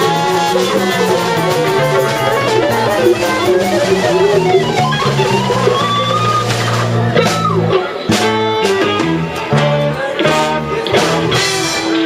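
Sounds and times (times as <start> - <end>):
bass guitar: 0.0 - 12.0
drums: 0.0 - 12.0
electric guitars: 0.0 - 12.0.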